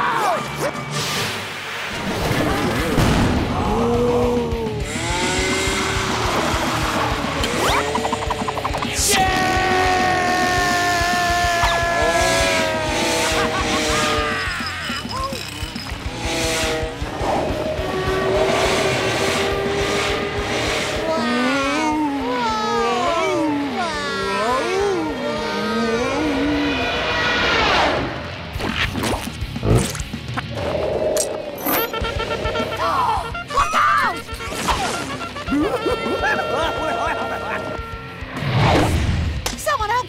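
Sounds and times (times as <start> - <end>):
cartoon music: 7.4 - 15.9, 31.6 - 38.2
cartoon sound effects: 11.6 - 15.7, 31.6 - 38.0
wordless character vocalisations: 21.0 - 26.9.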